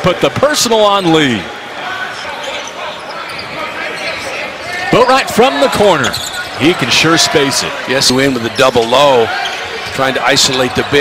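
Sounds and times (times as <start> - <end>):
basketball court noise: 0.0 - 11.0.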